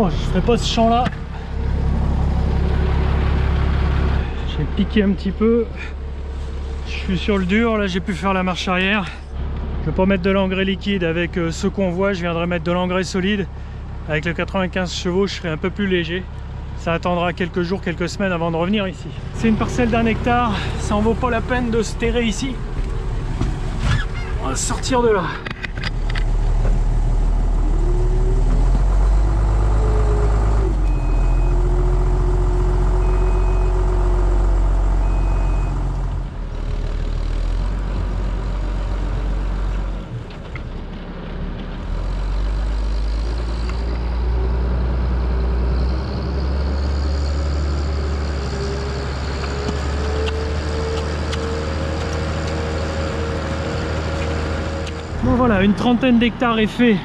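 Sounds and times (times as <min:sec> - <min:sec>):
tractor diesel engine under load: 0:00.0 - 0:57.0
short high beeps: 0:33.0 - 0:33.8.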